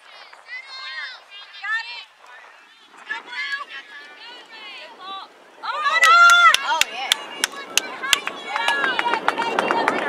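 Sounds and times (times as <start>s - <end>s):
sharp claps: 6.0s - 10.0s.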